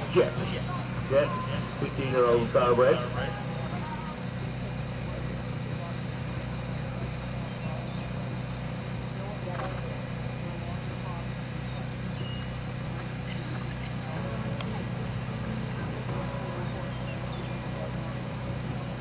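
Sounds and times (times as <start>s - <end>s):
faint distant voices: 0.0s - 19.0s
steady low hum: 0.0s - 19.0s.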